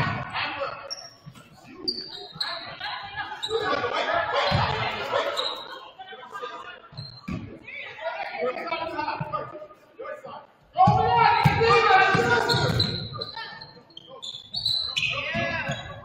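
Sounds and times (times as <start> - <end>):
people calling out: 10.8 - 13.8.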